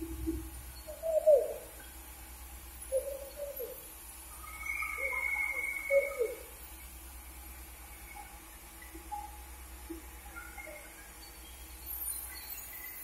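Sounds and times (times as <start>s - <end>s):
dove cooing: 0.0s - 1.8s, 2.9s - 3.8s, 4.6s - 6.5s.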